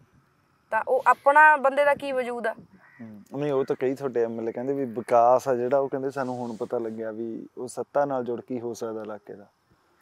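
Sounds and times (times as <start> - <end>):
woman talking: 0.7 - 2.6
man talking: 3.0 - 9.5.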